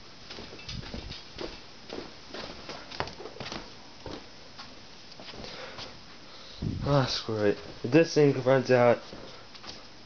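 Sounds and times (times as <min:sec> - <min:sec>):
footsteps: 0:00.2 - 0:06.0, 0:06.6 - 0:08.4, 0:09.0 - 0:09.8.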